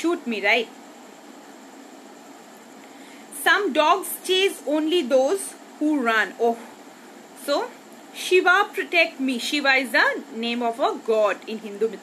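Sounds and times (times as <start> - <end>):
faint room noise hiss: 0.0 - 12.0.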